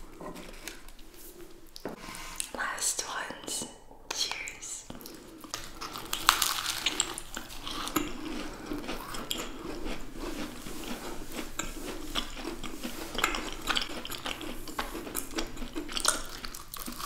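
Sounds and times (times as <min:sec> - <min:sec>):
crunchy chewing: 0:00.0 - 0:01.9, 0:04.9 - 0:17.0
wet mouth sounds: 0:04.2 - 0:17.0.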